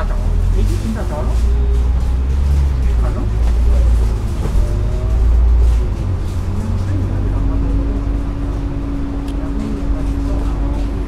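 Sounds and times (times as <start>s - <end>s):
bus engine rumble: 0.0s - 11.0s
drivetrain whine: 0.0s - 11.0s.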